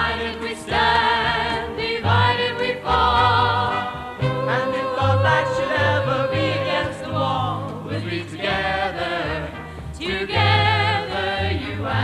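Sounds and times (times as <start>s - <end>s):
band accompaniment: 0.0s - 12.0s
choir singing held chords: 0.0s - 12.0s.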